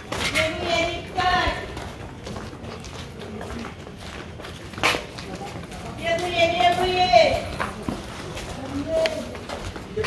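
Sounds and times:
faint footsteps: 0.0 - 10.0
outdoor background noise: 0.0 - 10.0.

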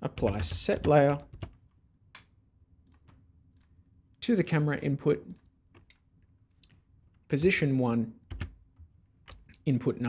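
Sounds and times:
person speaking: 0.0 - 1.5, 4.2 - 5.5.

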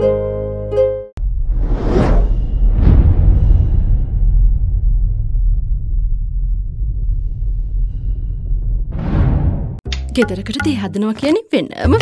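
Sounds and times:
deep rumble: 1.2 - 9.8
whooshes: 1.2 - 9.8.

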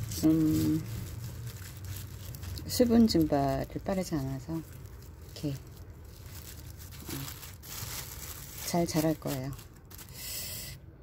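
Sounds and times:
plastic film crinkling: 0.0 - 10.4.

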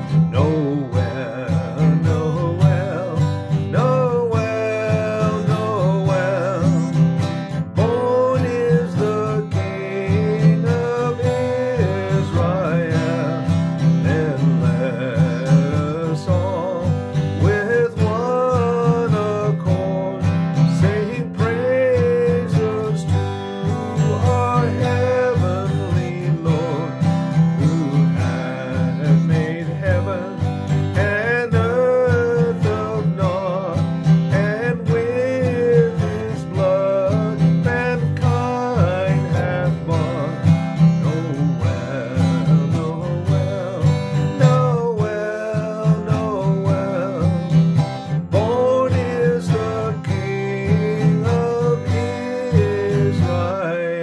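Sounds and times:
acoustic guitar strumming: 0.0 - 54.0
man singing: 0.0 - 54.0.

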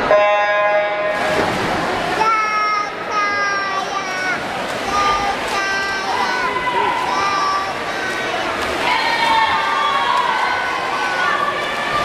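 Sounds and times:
crowded pool hall noise: 0.0 - 12.0.

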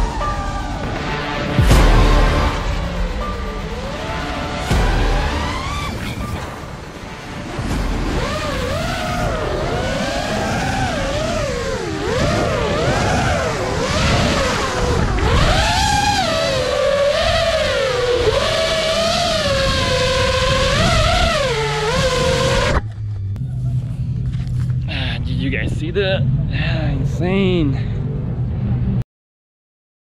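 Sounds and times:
quadcopter motors whining: 0.0 - 24.9.

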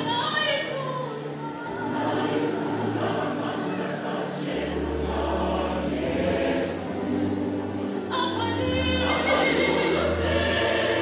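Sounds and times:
church choir singing in harmony: 1.1 - 11.0.

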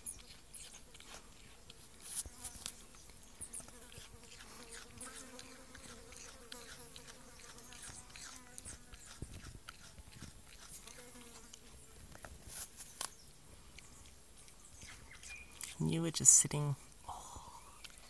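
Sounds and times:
animal chewing apple: 0.0 - 15.9, 17.7 - 18.0
flying insect buzzing: 3.5 - 9.0.

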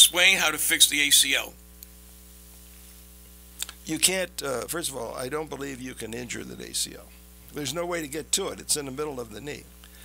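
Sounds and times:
man speaking: 0.0 - 1.6, 3.8 - 9.7
electrical mains hum: 0.0 - 10.0.

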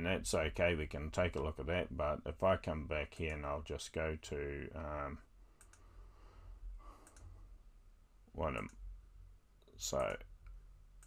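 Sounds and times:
faint low room hum: 0.0 - 11.0
computer mouse clicks: 5.6 - 5.9, 6.9 - 7.3.

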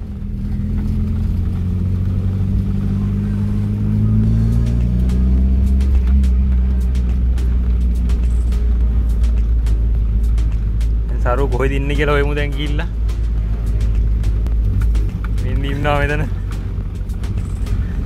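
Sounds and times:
car engine drone inside cabin: 0.0 - 18.0.

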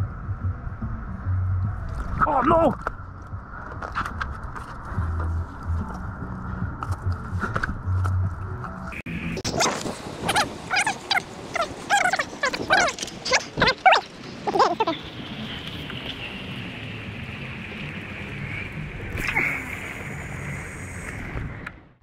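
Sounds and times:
steady background noise: 0.0 - 22.0
animal calling: 9.6 - 15.0.

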